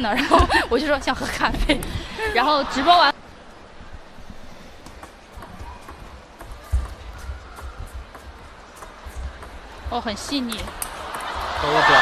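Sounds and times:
low arena background noise: 0.0s - 12.0s
table tennis ball clicking: 4.8s - 11.4s.

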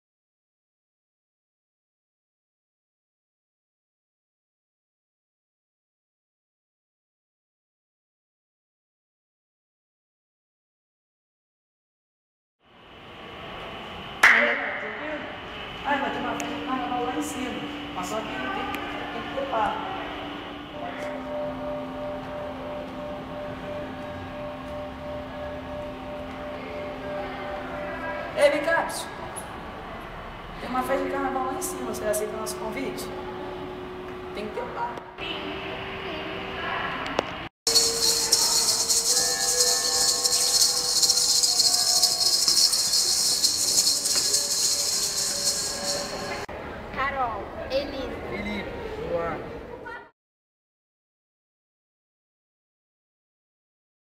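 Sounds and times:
steady mechanical hum: 12.7s - 50.0s
dense shaker rattle: 37.7s - 46.5s.

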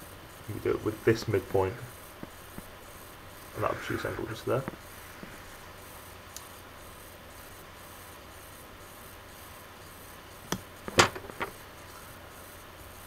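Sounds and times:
faint room hiss: 0.0s - 13.0s.

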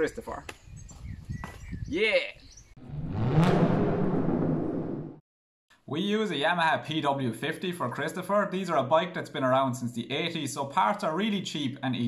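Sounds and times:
rumbling logo sting with rising tone: 2.8s - 5.2s.

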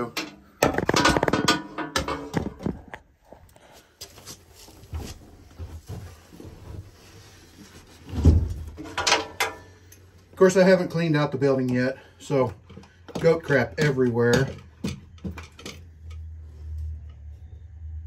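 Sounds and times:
handling clatter and knocks: 0.0s - 3.1s, 4.6s - 10.0s, 12.4s - 16.3s.

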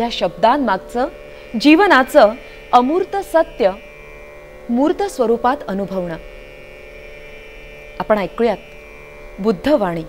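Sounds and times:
steady hum of held tones: 0.0s - 10.0s.

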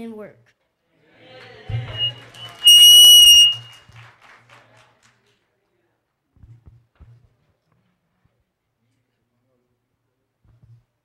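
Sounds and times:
applause: 1.2s - 2.7s, 3.5s - 5.6s
microphone feedback squeal: 1.7s - 3.8s.

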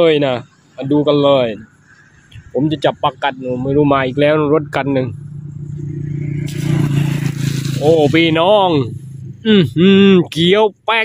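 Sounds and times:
vehicle engine drone: 0.0s - 11.0s
tyre and road hiss: 6.3s - 9.8s.

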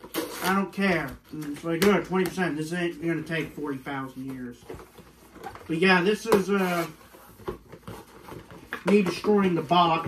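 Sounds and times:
cardboard and paper rustling: 0.5s - 10.0s.

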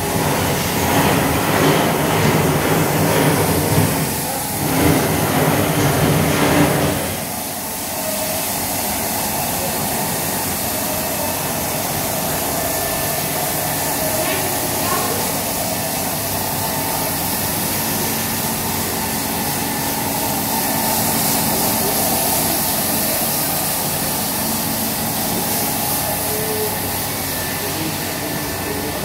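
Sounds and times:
carpet washing machine drone: 0.0s - 29.0s
hissing water spray: 0.0s - 29.0s.

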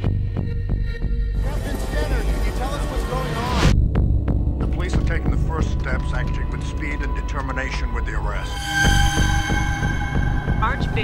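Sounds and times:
low throbbing rumble: 8.1s - 11.0s
rising whoosh: 8.4s - 11.0s
sharp hits: 8.4s - 11.0s.

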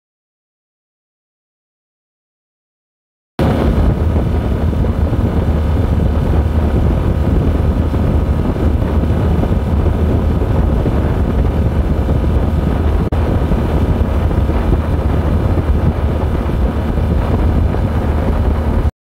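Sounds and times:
outboard motor running: 3.4s - 18.9s
wind on microphone: 3.4s - 18.9s.

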